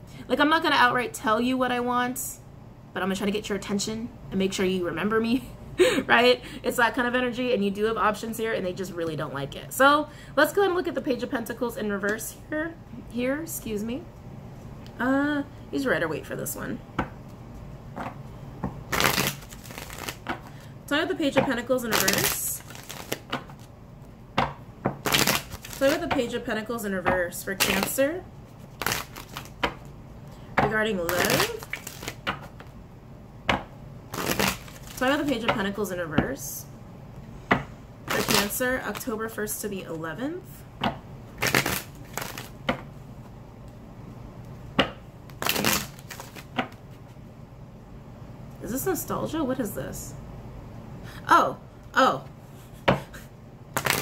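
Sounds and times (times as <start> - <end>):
cards being shuffled: 17.2 - 20.6, 21.8 - 23.7, 24.4 - 26.2, 27.6 - 29.9, 31.0 - 32.8, 34.1 - 35.5, 38.1 - 39.2, 41.4 - 42.9, 45.3 - 47.2, 53.8 - 54.0
cards snapping: 18.9 - 20.5, 22.0 - 23.7, 25.0 - 26.0, 28.8 - 29.9, 31.1 - 32.7, 34.1 - 35.1, 41.4 - 42.6, 45.3 - 46.8, 53.8 - 54.0.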